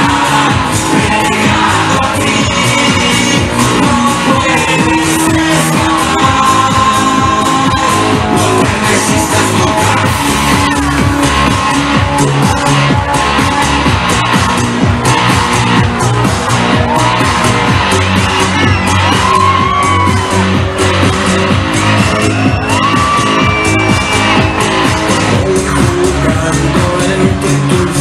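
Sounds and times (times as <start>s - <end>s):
loud live pop music: 0.0s - 28.0s.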